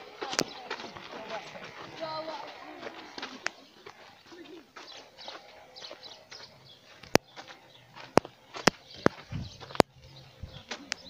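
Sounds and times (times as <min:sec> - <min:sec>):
footsteps on dirt road: 0:00.0 - 0:11.0.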